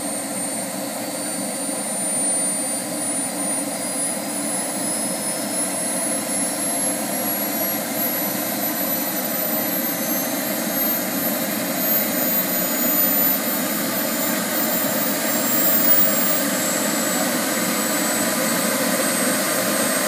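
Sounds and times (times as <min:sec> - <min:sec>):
small turbine engine whining: 0:00.0 - 0:20.0.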